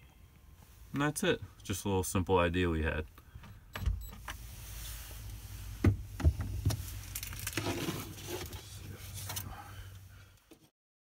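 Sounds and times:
steady low hum: 0:03.0 - 0:10.5.

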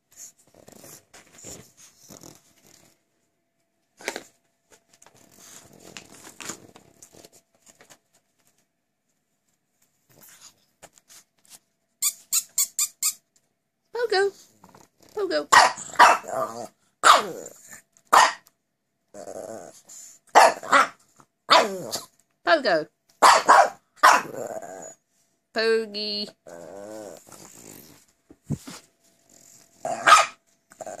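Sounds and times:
dog whining squeakily: 0:12.0 - 0:13.2
dog barking sharply: 0:15.5 - 0:16.3, 0:17.0 - 0:17.3, 0:18.1 - 0:18.4, 0:20.4 - 0:21.8, 0:23.2 - 0:24.3, 0:30.0 - 0:30.4
dogs growling: 0:15.8 - 0:17.8, 0:19.1 - 0:20.0, 0:24.2 - 0:25.0, 0:26.3 - 0:28.0, 0:29.3 - 0:31.0.

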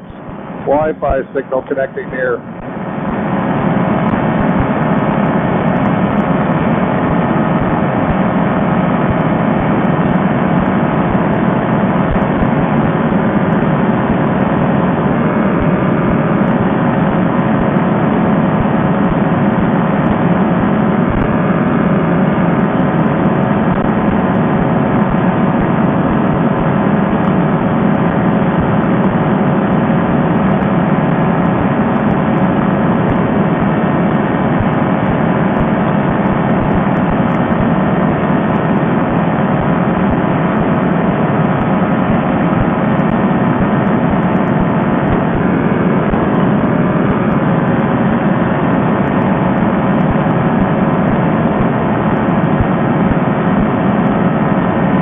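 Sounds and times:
paramotor engine and propeller running: 0:00.1 - 0:55.0.

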